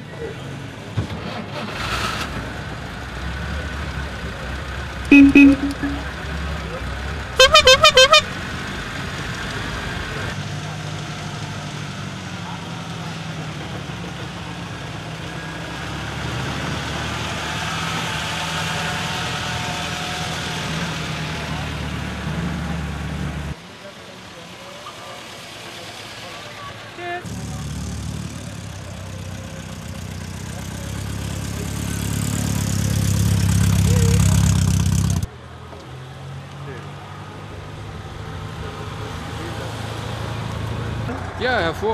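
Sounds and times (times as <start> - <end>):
old car engines driving off: 0.0 - 41.9
car horn toot: 5.1 - 6.1, 7.4 - 8.4.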